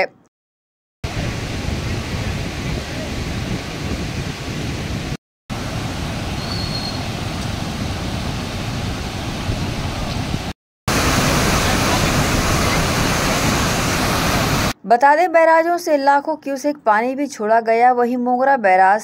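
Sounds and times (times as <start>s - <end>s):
water rushing over a weir: 5.5s - 14.8s.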